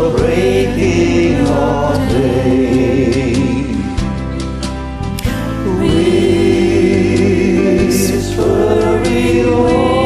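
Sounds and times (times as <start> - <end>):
woman and man singing in harmony: 0.0 - 4.0, 5.6 - 10.0.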